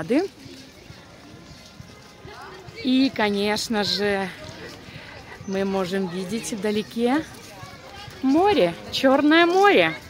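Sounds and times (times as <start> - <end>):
faint background music: 0.0 - 10.0
footsteps on paving: 0.0 - 10.0.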